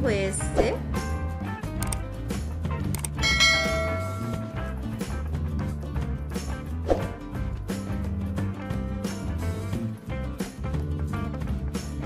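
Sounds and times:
background music: 0.0s - 12.0s
click: 1.8s - 2.0s, 2.9s - 3.2s
bright bell-like chime: 3.2s - 4.8s.

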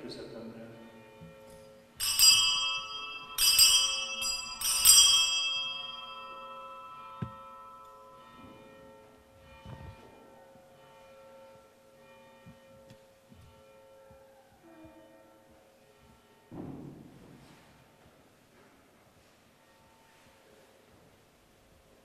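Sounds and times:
altar bells ringing: 0.0s - 14.4s.

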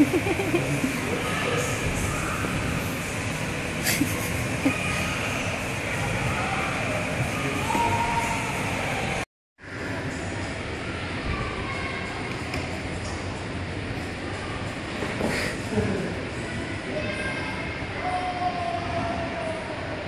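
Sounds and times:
faint voices: 0.0s - 20.0s.

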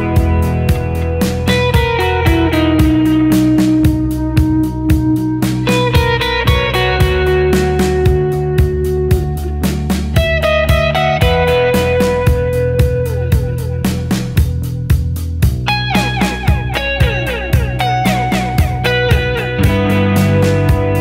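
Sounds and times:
electric guitar with delay: 0.0s - 14.9s, 15.5s - 21.0s
bass: 0.0s - 21.0s
drums steady beat: 0.0s - 21.0s.

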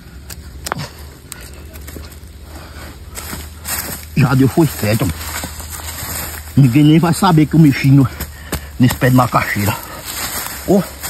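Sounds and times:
dry twigs and leaves crackling: 0.0s - 11.0s
hands digging in loose soil: 0.0s - 11.0s.

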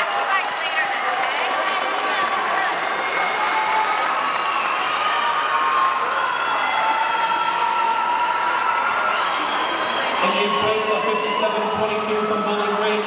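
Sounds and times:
crowd clapping: 0.0s - 6.3s
crowd cheering and shouting: 0.0s - 13.0s.

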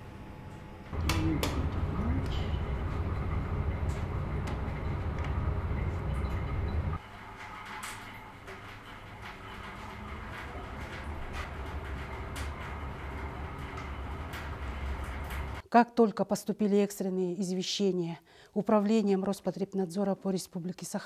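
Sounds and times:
cabinet fan humming: 0.0s - 15.6s.

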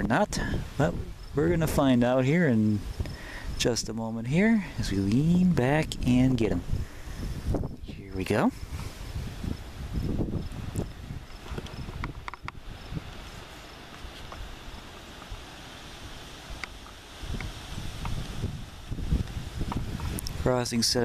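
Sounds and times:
grass and leaves rustling: 0.0s - 21.0s
wind buffeting microphone: 0.0s - 21.0s.

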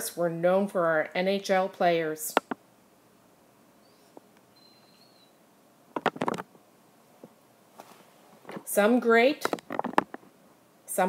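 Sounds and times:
thin high whistle: 3.9s - 5.3s.

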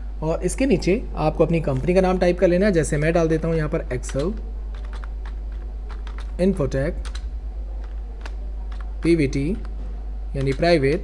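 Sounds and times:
steady low hum: 0.0s - 11.0s
computer keyboard typing: 2.9s - 9.8s, 10.4s - 11.0s.

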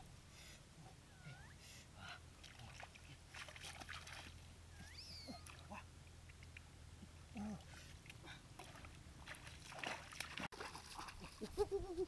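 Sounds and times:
sloshing of muddy water: 2.4s - 5.9s, 7.4s - 11.6s.

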